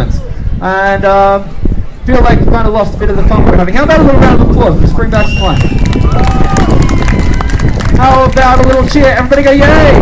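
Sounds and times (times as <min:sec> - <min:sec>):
crowd applauding: 0:05.6 - 0:09.2.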